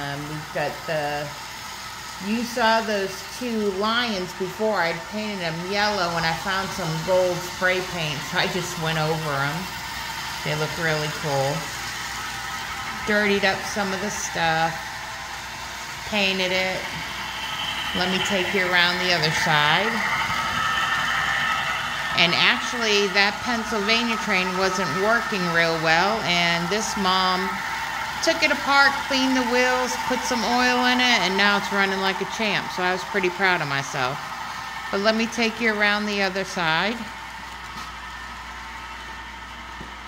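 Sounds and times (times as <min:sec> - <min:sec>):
low mechanical hum: 0:00.0 - 0:40.0
model train whirring: 0:00.0 - 0:40.0.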